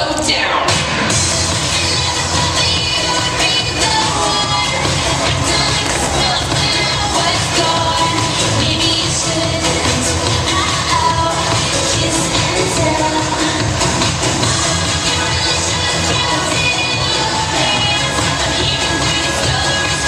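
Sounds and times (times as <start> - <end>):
crowd noise: 0.0 - 20.0
pop song over sound system: 0.0 - 20.0.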